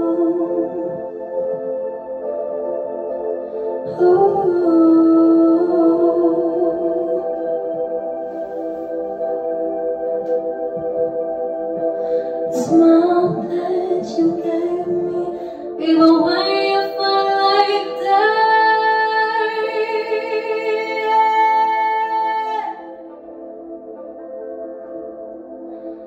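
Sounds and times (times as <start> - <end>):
girl singing into a microphone: 0.0 - 1.6, 3.8 - 7.7, 12.1 - 23.0
ambient backing track: 0.0 - 26.0.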